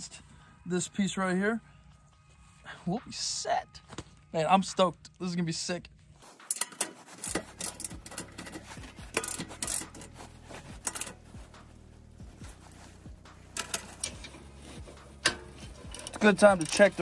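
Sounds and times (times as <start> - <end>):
socket ratchet clicking: 6.5 - 10.1, 10.8 - 11.2.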